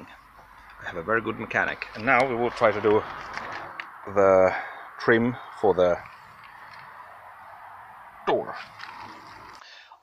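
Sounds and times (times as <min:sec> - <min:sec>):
outdoor ambient hush: 0:00.0 - 0:10.0.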